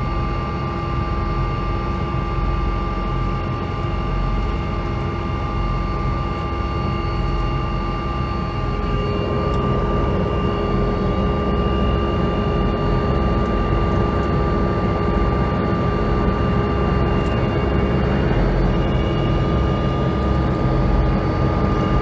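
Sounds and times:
helicopter engine and rotors: 0:00.0 - 0:22.0.

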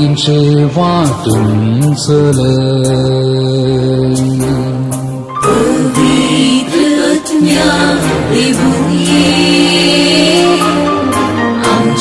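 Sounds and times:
person singing a hymn: 0:00.0 - 0:12.0.

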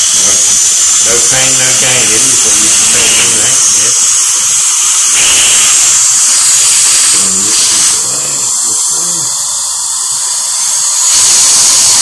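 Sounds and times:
dental drill whining: 0:00.0 - 0:12.0
person speaking: 0:01.0 - 0:04.2.

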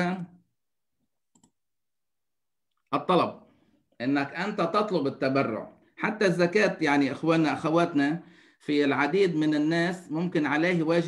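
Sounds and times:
man speaking: 0:00.0 - 0:00.5, 0:02.8 - 0:11.0.

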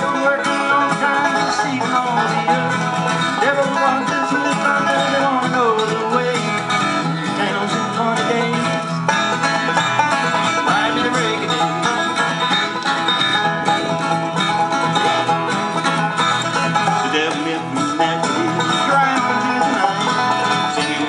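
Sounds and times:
acoustic guitar strumming: 0:00.0 - 0:21.0
banjo picking: 0:00.0 - 0:21.0.

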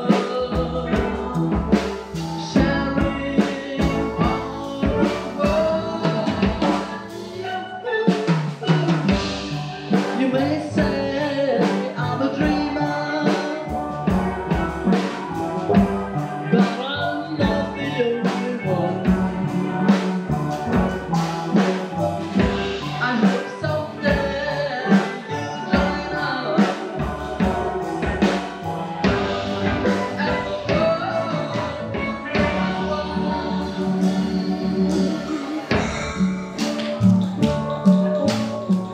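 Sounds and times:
steady drum beat: 0:00.0 - 0:38.9.

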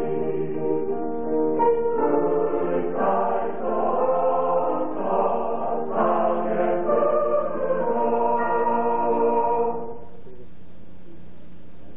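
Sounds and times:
mixed choir singing a waltz: 0:00.0 - 0:10.4.

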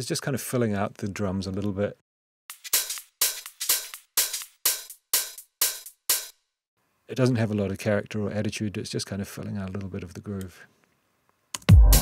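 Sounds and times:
hi-hat percussion loop: 0:02.5 - 0:06.4, 0:11.6 - 0:12.0.

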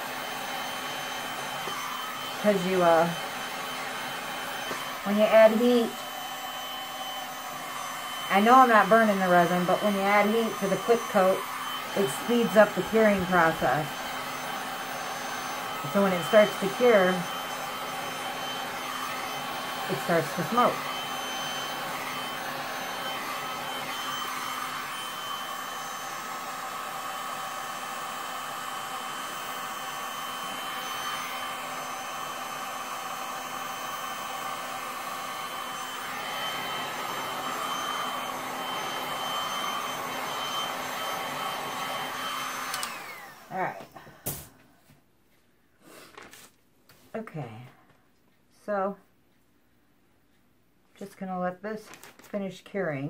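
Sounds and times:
heat gun fan whining: 0:00.0 - 0:44.5.

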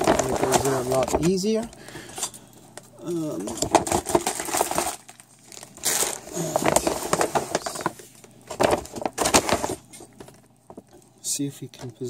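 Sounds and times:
plastic bags crinkling: 0:00.0 - 0:11.2.

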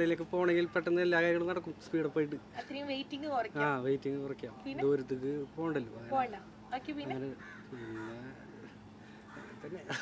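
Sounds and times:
crow cawing: 0:07.1 - 0:10.0.

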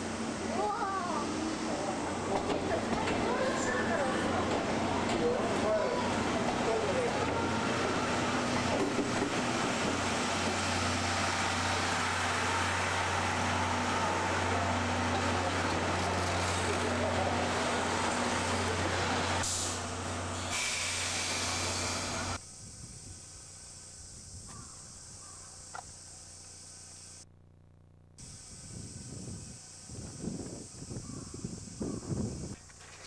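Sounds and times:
steam locomotive hissing: 0:00.0 - 0:22.4.

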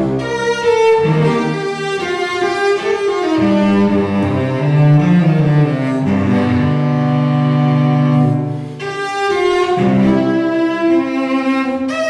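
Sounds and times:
bowed cello notes: 0:00.0 - 0:12.0.

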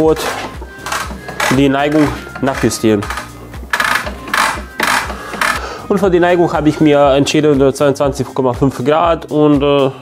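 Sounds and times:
background music: 0:00.0 - 0:10.0
saw bevel mechanism scraping: 0:00.2 - 0:05.6.

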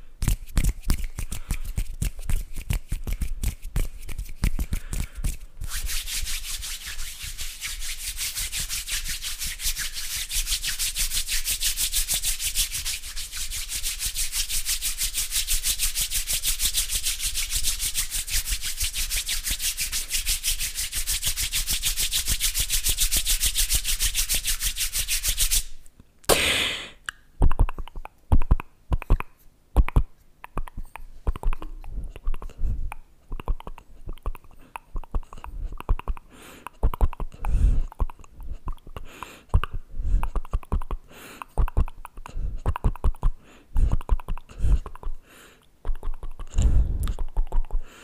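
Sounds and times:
palms rubbing together: 0:00.2 - 0:25.8, 0:33.4 - 0:45.2
hand swish: 0:00.2 - 0:27.0.

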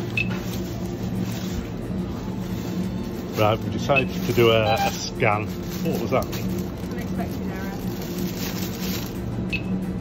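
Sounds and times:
supermarket background hum: 0:00.0 - 0:10.0.

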